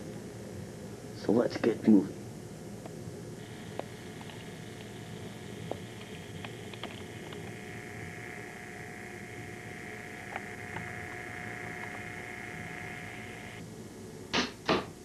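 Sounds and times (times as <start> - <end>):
camcorder hiss and hum: 0.0 - 15.0
steady high whine: 0.0 - 15.0
faint clicks: 2.8 - 13.6.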